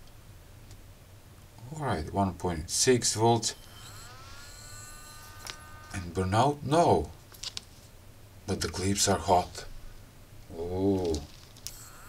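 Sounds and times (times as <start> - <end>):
high-pitched electronic whine: 2.9 - 6.8, 10.5 - 12.0.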